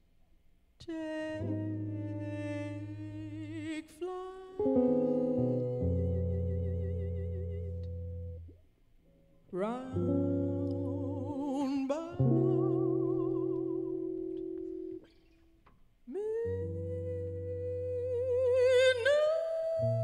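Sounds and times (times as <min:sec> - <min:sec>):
woman singing wordless notes: 0:00.8 - 0:08.4, 0:09.5 - 0:15.1, 0:16.1 - 0:20.0.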